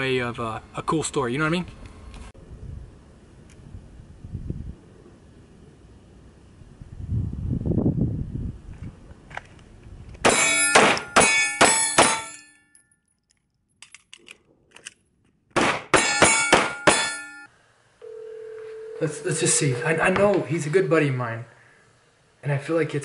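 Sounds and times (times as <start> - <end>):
handgun shots ringing: 10.2 - 12.4, 15.6 - 17.5
telephone ringing tone: 18.0 - 20.2.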